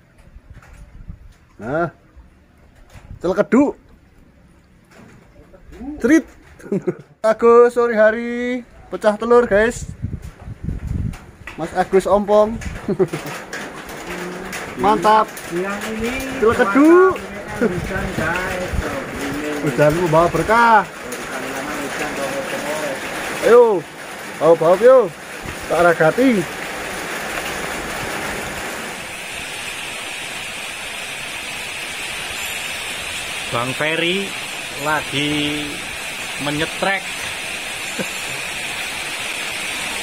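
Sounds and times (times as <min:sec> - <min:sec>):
steady rain: 0:00.0 - 0:40.0
men's voices calling: 0:05.2 - 0:09.7, 0:11.6 - 0:29.4, 0:33.4 - 0:38.9
steady background noise: 0:10.4 - 0:40.0.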